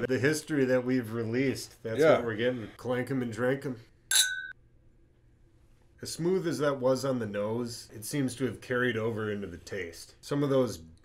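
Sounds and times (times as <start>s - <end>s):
glasses clinking: 4.1s - 4.6s.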